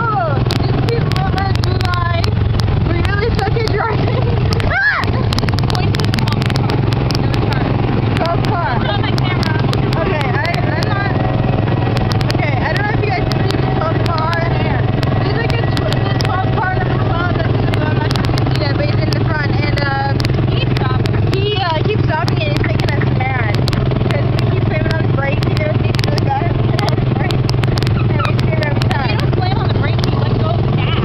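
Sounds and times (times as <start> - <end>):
other car engines: 0.0 - 31.0
rattles and clicks: 0.0 - 31.0
small engine droning: 0.0 - 31.0.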